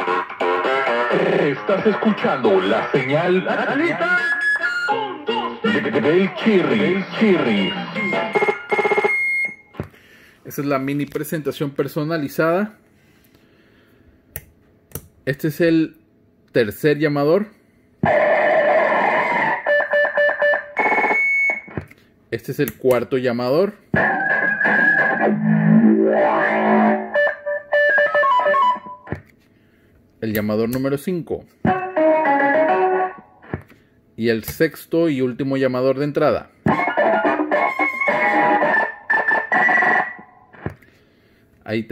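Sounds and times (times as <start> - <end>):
electronic radio caller melody: 0.0 - 9.7, 18.1 - 21.7, 24.0 - 29.1, 36.7 - 40.5
descending electronic notes: 24.0 - 29.1.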